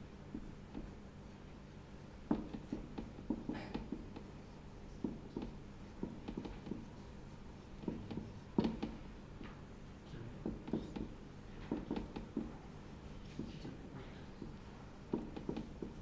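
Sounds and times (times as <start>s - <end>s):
marker writing on whiteboard: 0.3s - 1.0s, 2.2s - 9.6s, 10.4s - 12.6s, 13.2s - 16.0s.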